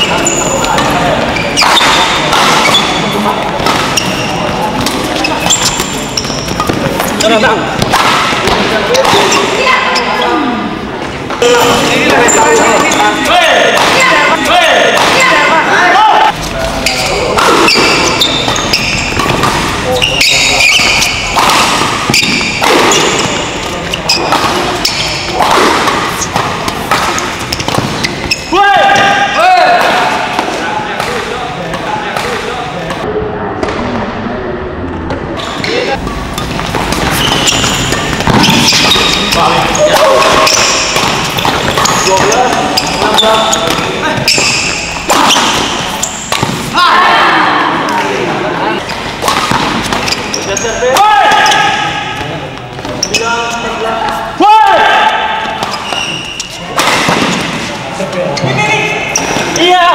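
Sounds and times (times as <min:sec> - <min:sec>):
spectators' voices and shouts: 0:00.0 - 0:59.9
racket hitting shuttlecock: 0:01.6 - 0:09.7, 0:12.8 - 0:15.3, 0:16.6 - 0:33.0, 0:36.0 - 0:46.8, 0:48.8 - 0:53.0, 0:55.0 - 0:57.7.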